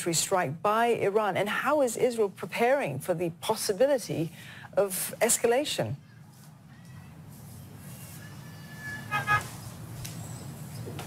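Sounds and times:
city background hum: 0.0s - 11.0s.

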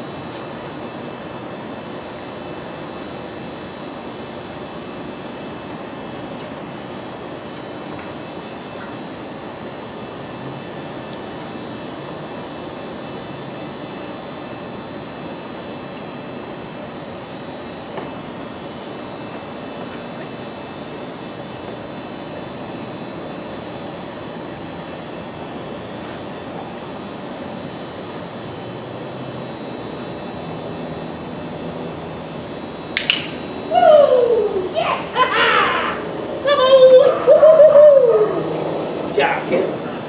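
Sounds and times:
mechanical drone with high whine: 0.0s - 40.0s
dog whining: 33.8s - 38.6s.

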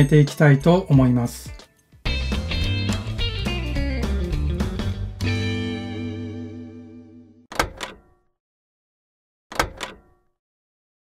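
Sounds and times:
electric guitar chord: 2.2s - 7.4s.

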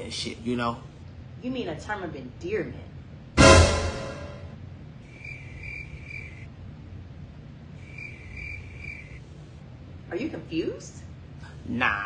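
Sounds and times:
crickets chirping: 5.0s - 6.6s, 7.6s - 9.5s.

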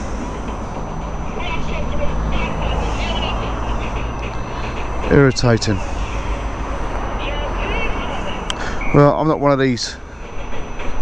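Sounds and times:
low engine hum: 0.0s - 11.0s
road traffic rumble: 0.0s - 11.0s.

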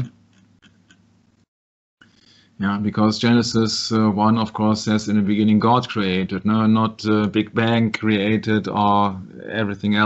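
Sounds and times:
low hiss: 2.0s - 10.0s.

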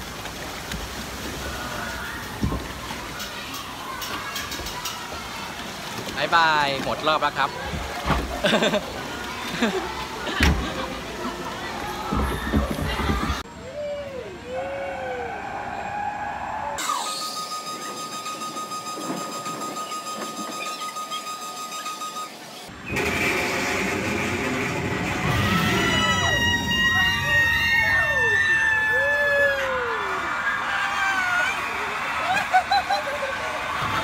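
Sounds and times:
riders screaming and whooping: 11.6s - 17.5s, 25.2s - 34.0s.

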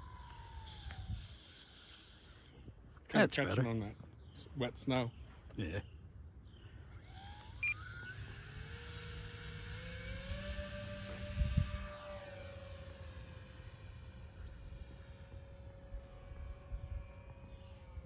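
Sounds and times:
model airplane motor whining: 0.0s - 2.8s, 6.4s - 18.0s.

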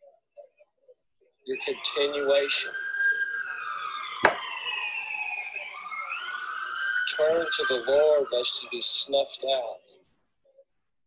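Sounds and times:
emergency siren wailing: 1.5s - 9.9s.

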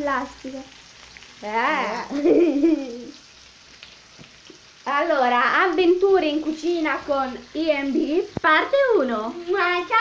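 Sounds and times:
bacon sizzling in a pan: 0.0s - 10.0s
young woman laughing: 2.1s - 3.2s.

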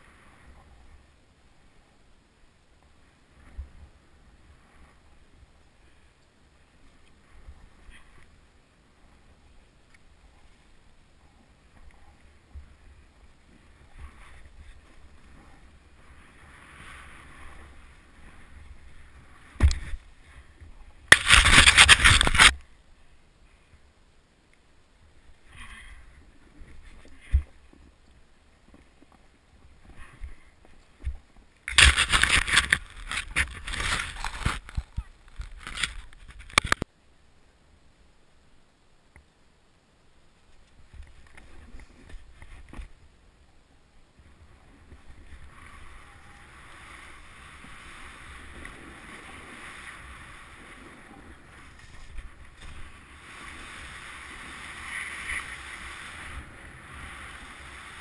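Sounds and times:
snowboard sliding through snow: 0.0s - 2.0s, 2.8s - 23.7s, 25.1s - 35.9s, 44.1s - 58.0s
scraping rush of snow: 10.3s - 22.6s, 44.4s - 58.0s
crunchy crackles: 11.4s - 22.7s, 28.7s - 36.9s, 44.7s - 58.0s.

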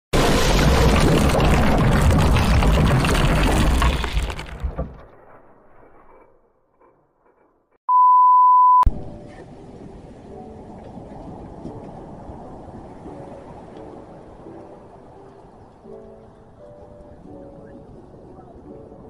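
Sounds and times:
loud crashing shattering: 0.2s - 5.0s
steady high beep: 7.9s - 8.9s
faint surf: 7.9s - 19.0s.

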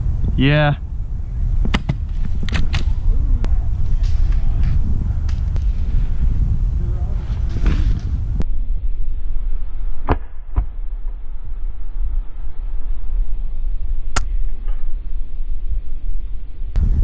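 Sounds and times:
wind buffeting microphone: 0.0s - 8.9s, 16.8s - 17.0s.

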